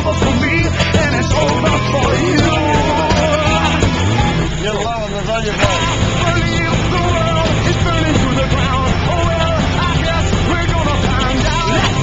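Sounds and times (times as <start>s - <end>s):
band playing a song: 0.0s - 12.0s.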